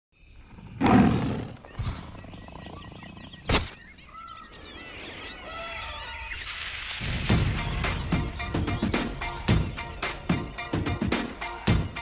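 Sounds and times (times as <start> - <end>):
chirping whistling bird calls: 0.2 - 6.8.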